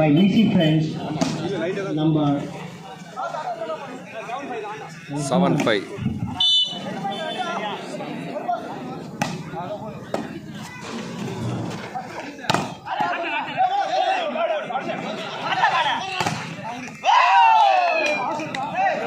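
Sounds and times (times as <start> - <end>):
spectators shouting and cheering: 5.9 - 19.0
volleyball hit by hand: 9.2 - 9.5, 12.5 - 13.1, 16.2 - 16.6.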